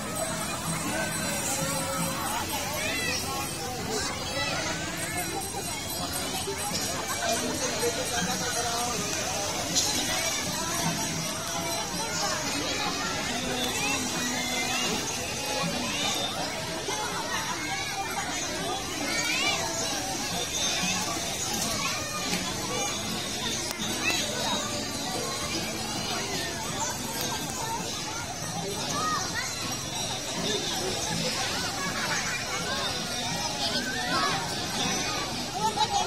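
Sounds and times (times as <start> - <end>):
children shouting in water: 0.0 - 36.0.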